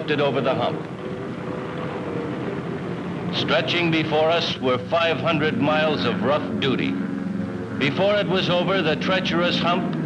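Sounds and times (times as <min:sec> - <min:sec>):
faint steady hum: 0:00.0 - 0:10.0
piston engines droning: 0:00.0 - 0:10.0.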